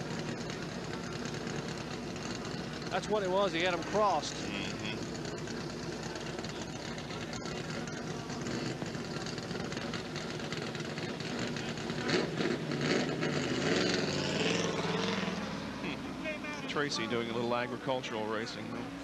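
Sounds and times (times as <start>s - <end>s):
din of engines: 0.0s - 19.0s
race car engine revving: 0.0s - 19.0s.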